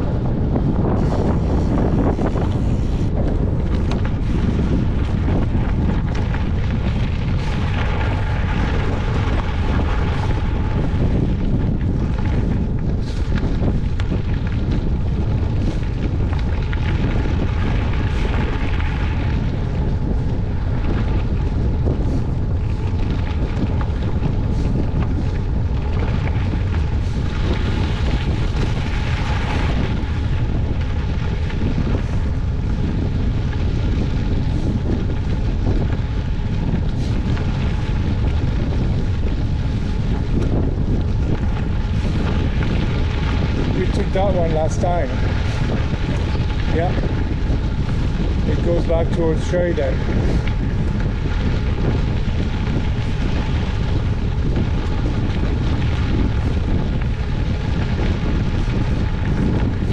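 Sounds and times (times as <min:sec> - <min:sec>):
tyres crackling over gravel: 0:00.0 - 0:59.9
wind buffeting microphone: 0:00.0 - 0:59.9.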